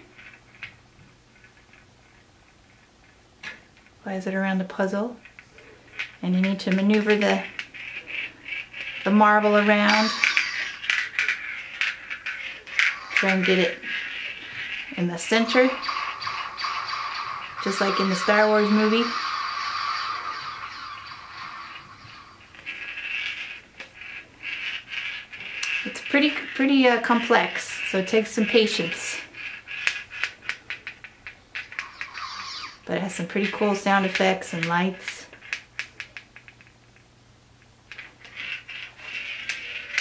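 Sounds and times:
marble rolling through plastic maze: 0.0s - 40.0s.

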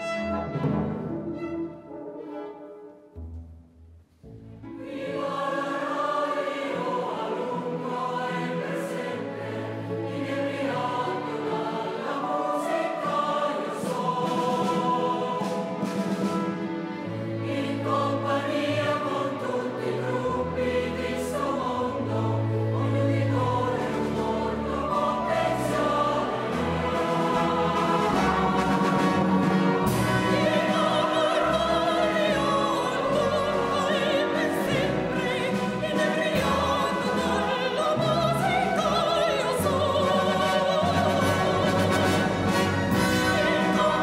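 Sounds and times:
symphony orchestra playing: 0.0s - 44.0s
choir singing: 4.6s - 44.0s.

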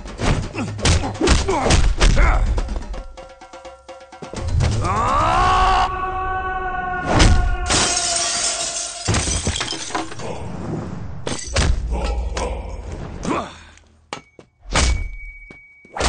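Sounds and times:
dramatic score music: 0.0s - 7.7s
glass window shattering: 7.7s - 10.2s.

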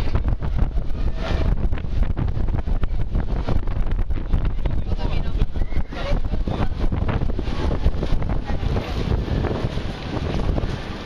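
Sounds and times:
busy street crowd noise: 0.0s - 11.0s
wind buffeting microphone: 0.0s - 11.0s.

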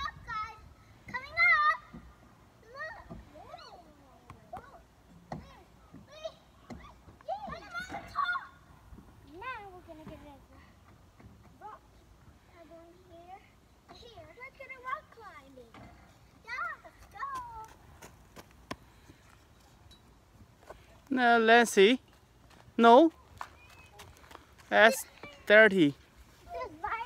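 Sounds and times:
children calling and chattering: 0.0s - 19.8s, 23.2s - 27.0s.

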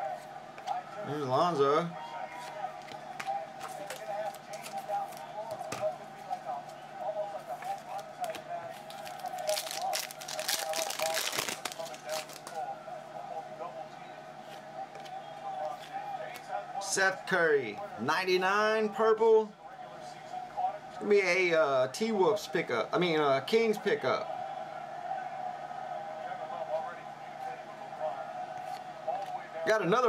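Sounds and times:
faint voices: 0.0s - 18.2s
rapid clicking of riffled cards: 7.6s - 12.6s
plastic card sleeves clicking: 7.7s - 12.6s.

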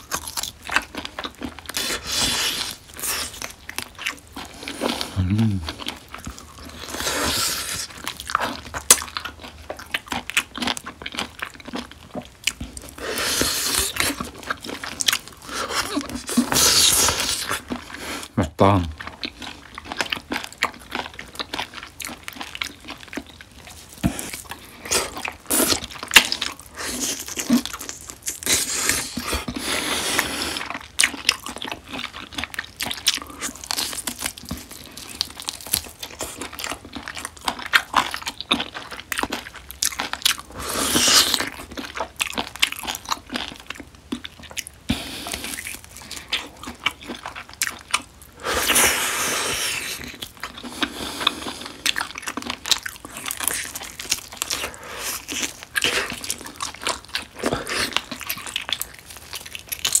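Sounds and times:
biting and chewing meat: 0.0s - 60.0s.

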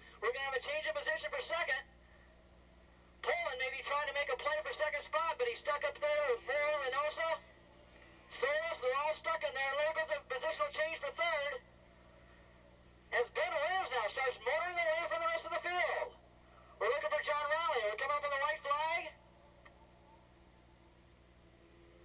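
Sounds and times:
commentator talking over radio: 0.2s - 1.9s, 3.2s - 7.4s, 8.3s - 11.6s, 13.1s - 16.2s, 16.8s - 19.2s.

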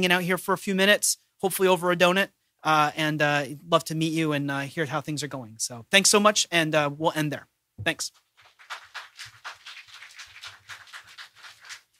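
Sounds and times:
scattered handclaps: 8.2s - 11.9s.

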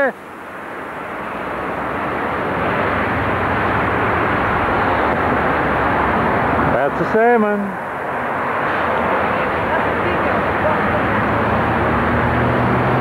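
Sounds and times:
steady outdoor roar: 0.0s - 13.0s.

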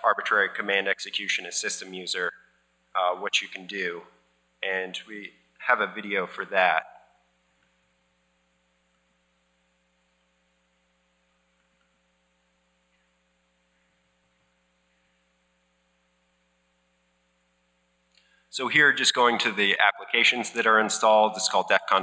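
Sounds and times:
faint electrical hum: 0.0s - 22.0s.

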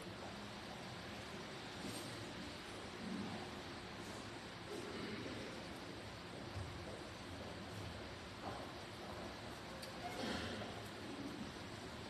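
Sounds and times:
faint room tone hiss: 0.0s - 12.0s.

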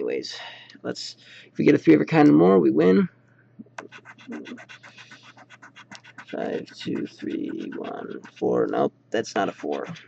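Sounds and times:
lottery ticket being scratched: 3.8s - 10.0s.

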